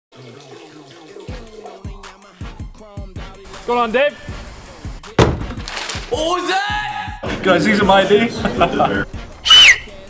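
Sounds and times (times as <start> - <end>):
running water splashing: 0.1 - 2.8
music: 0.2 - 10.0
deep bass drum hits: 5.1 - 5.6.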